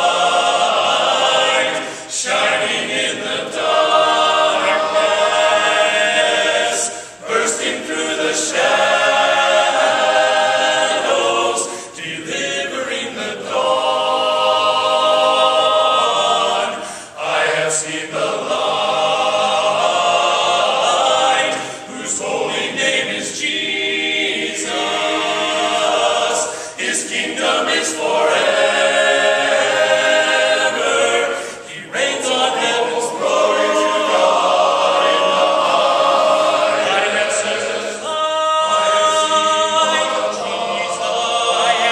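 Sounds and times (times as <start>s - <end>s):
men's chorus singing a cappella: 0.0s - 41.9s.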